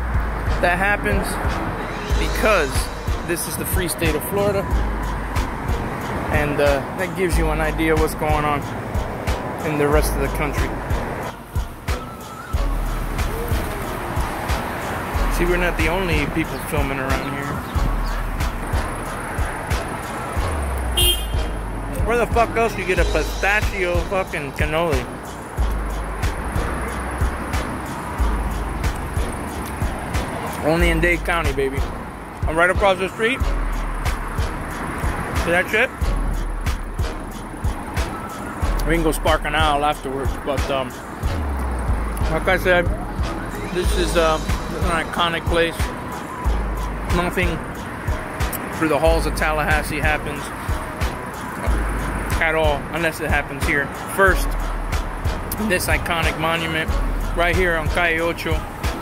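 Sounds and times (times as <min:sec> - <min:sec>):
music playing: 0:00.0 - 0:59.0
traffic noise: 0:00.0 - 0:59.0.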